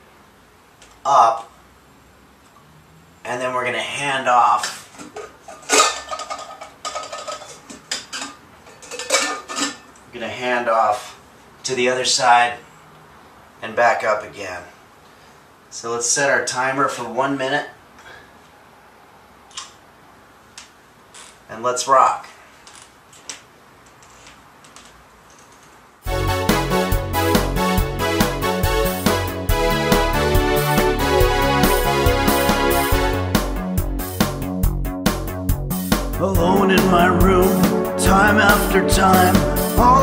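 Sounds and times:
teapot clinking: 5.2s - 9.9s.

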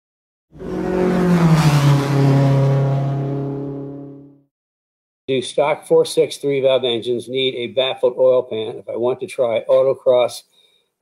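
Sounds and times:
car passing by at speed: 0.6s - 4.3s.

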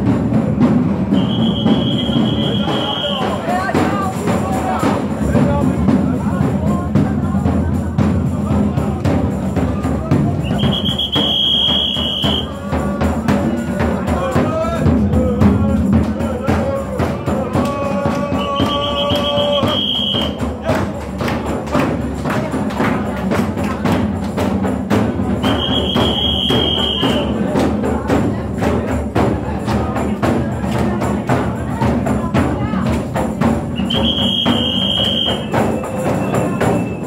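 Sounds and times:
percussion beating steady rhythm: 0.0s - 37.0s
long high whistle-like tone: 1.2s - 3.3s, 10.4s - 12.5s, 33.8s - 37.0s.

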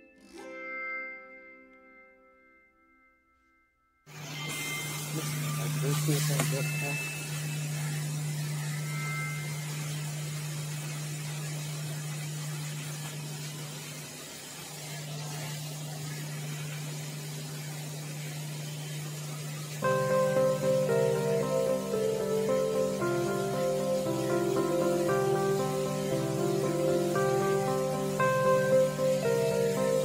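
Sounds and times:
background music with held notes: 0.0s - 13.9s, 15.3s - 30.0s
faint hiss: 4.3s - 30.0s
steady low hum: 4.6s - 30.0s.

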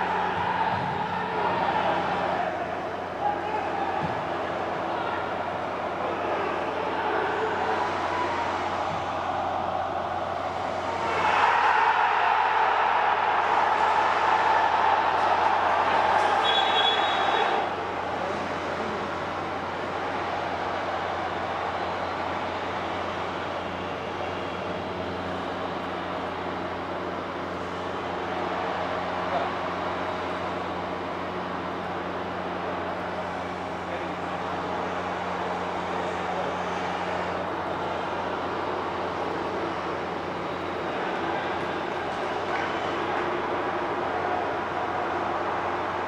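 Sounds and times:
stadium hum and noise: 0.0s - 46.0s
referee's whistle blast: 16.4s - 17.6s.

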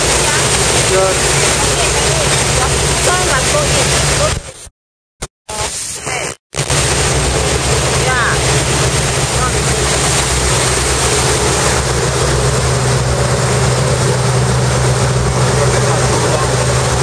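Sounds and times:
boat engine running: 0.0s - 4.7s, 6.1s - 17.0s
wake water rushing: 0.0s - 4.7s, 6.0s - 17.0s.

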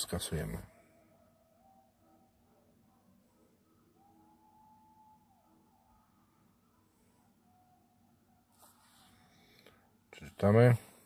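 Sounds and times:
faint steady tone: 0.0s - 11.0s.

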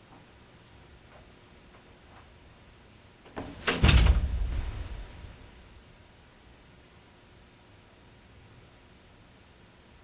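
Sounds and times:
heavy thud with low rumble: 3.8s - 5.7s.

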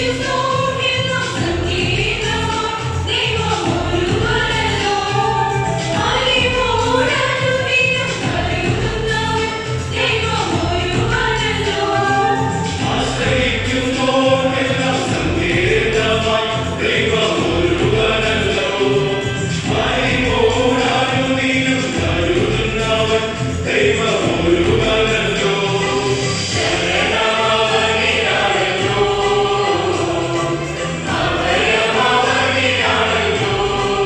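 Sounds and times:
electronic keyboard accompaniment: 0.0s - 34.0s
mixed choir singing: 0.0s - 34.0s.

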